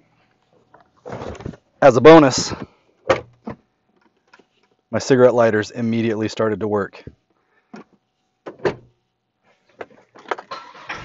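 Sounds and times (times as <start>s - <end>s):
rustling and handling noise: 0.2s - 1.8s, 2.4s - 4.9s.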